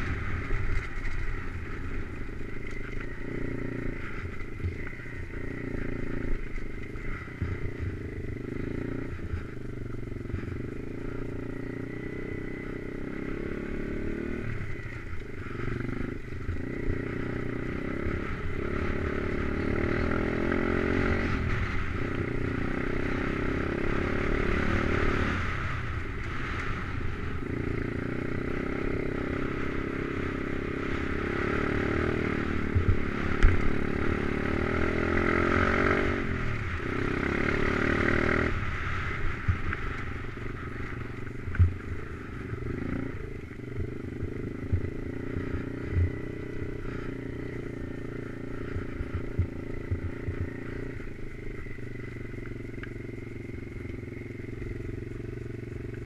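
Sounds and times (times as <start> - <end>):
motorbike engine revving: 0.0 - 56.0.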